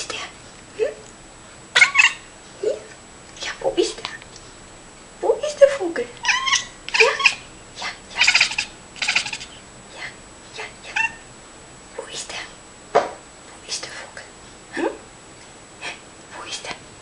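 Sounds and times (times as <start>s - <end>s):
cat chirping and meowing: 1.8s - 2.3s, 6.2s - 7.5s, 8.1s - 9.6s, 10.9s - 11.2s.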